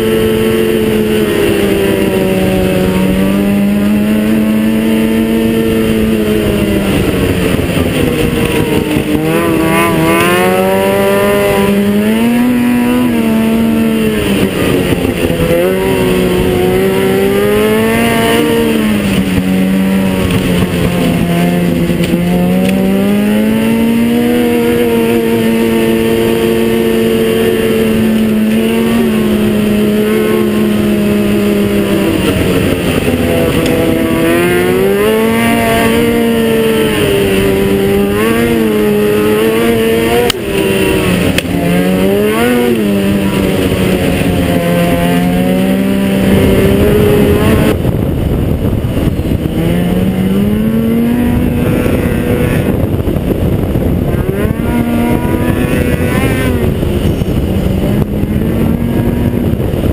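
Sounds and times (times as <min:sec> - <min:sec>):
snowmobile engine revving: 0:00.0 - 0:59.9.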